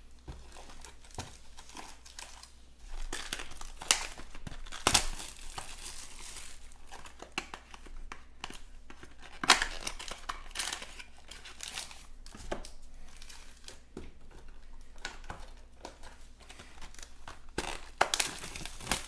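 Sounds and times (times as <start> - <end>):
card packs rustling: 0.0 - 19.0
plastic wrap tearing and crinkling: 0.0 - 19.0
plastic wrap snapping: 0.2 - 13.8, 14.4 - 19.0.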